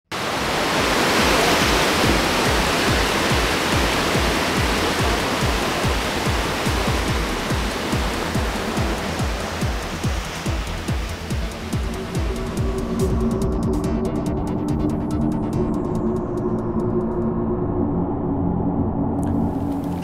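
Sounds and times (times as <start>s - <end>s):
music with low beat: 1.4s - 17.9s.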